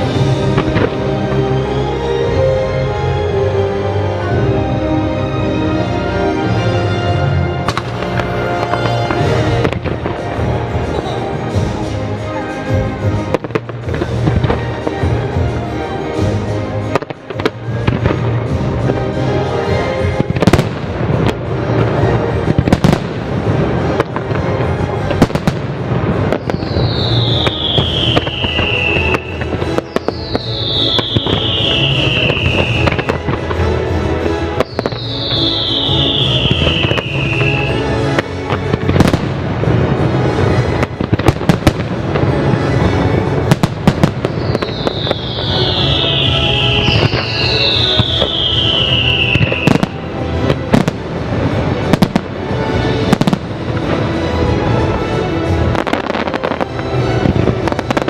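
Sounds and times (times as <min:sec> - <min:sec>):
fireworks bursting: 0:00.0 - 0:02.4, 0:07.6 - 0:58.0
music soundtrack: 0:00.0 - 0:58.0
firework whistles falling in pitch: 0:26.3 - 0:33.2, 0:34.6 - 0:37.8, 0:44.3 - 0:50.0.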